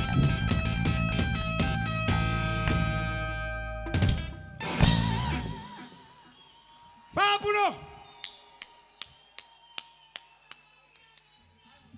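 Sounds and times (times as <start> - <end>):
slow hand claps: 8.1 - 11.4.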